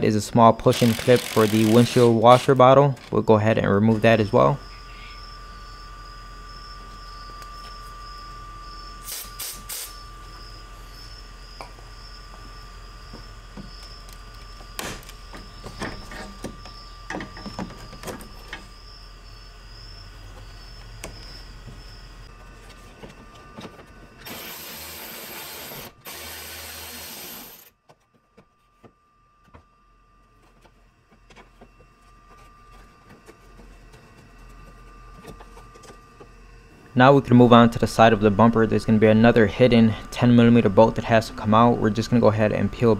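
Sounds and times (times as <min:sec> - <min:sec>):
steady low hum: 0:00.0 - 0:42.9
burst of hiss: 0:09.0 - 0:10.0.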